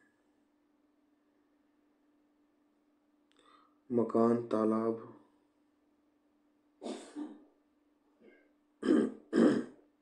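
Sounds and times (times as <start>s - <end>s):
man clearing his throat: 6.8s - 7.4s, 8.8s - 9.8s.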